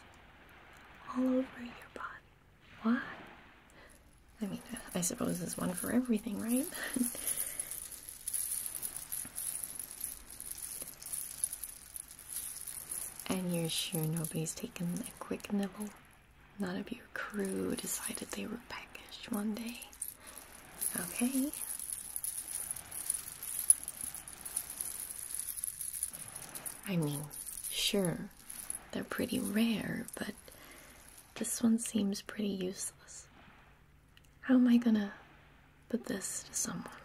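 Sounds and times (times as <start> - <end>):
beads rattling: 4.0 - 31.9.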